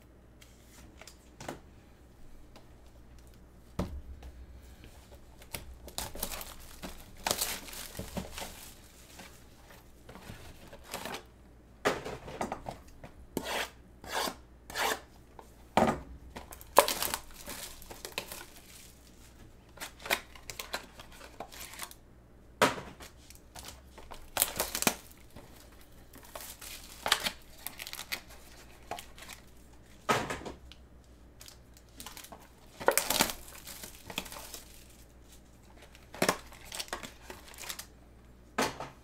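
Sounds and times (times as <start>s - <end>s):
plastic wrapping crinkling and tearing: 5.0s - 11.3s, 16.4s - 22.0s, 23.2s - 30.0s, 31.4s - 37.9s.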